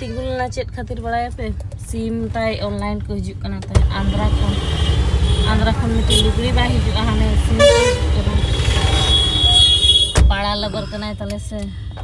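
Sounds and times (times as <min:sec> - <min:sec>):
car engine and road rumble: 0:00.0 - 0:12.0
vehicle horn: 0:04.1 - 0:06.4, 0:07.6 - 0:10.2.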